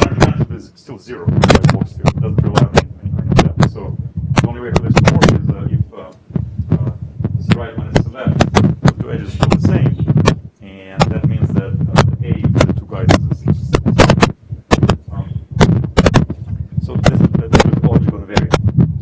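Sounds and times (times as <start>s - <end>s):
muffled man's voice: 0.0s - 14.3s, 14.9s - 15.6s, 16.7s - 18.7s
steady low hum: 0.0s - 19.0s.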